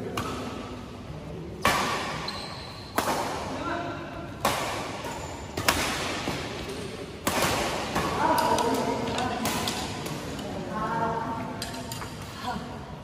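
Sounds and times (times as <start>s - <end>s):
badminton racket hitting shuttlecock: 4.4s - 10.5s.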